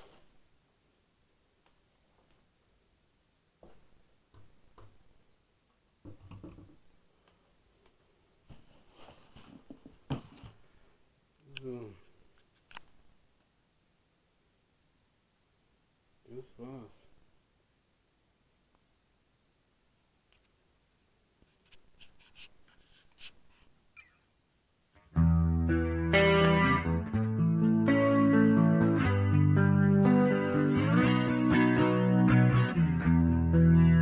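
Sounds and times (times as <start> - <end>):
soft knocks: 6.0 - 6.8
faint rustles and clicks: 6.4 - 13.2, 21.4 - 24.2
faint squeak: 22.0 - 24.3.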